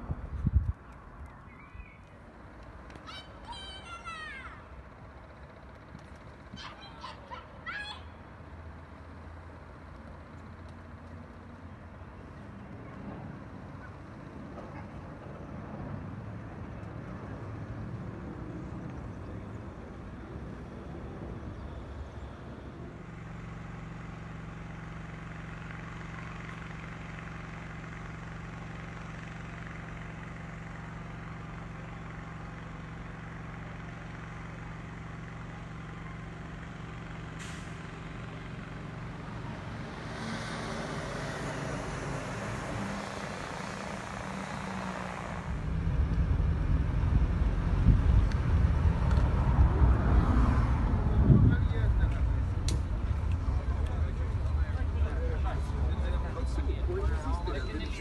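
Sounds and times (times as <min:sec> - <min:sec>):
truck engine idling: 0:40.7 - 0:49.2, 0:50.9 - 0:58.0
loud low rumble: 0:45.4 - 0:58.0.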